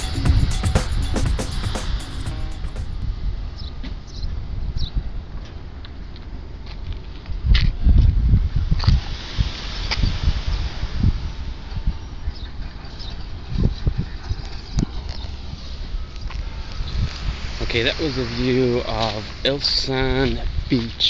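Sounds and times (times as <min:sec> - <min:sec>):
outdoor background hiss: 0:15.7 - 0:21.0.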